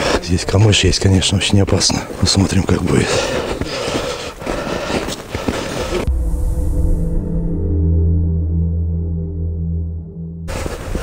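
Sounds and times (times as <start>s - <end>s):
footsteps crunching through snow: 1.8s - 6.1s
low droning music: 6.0s - 11.0s.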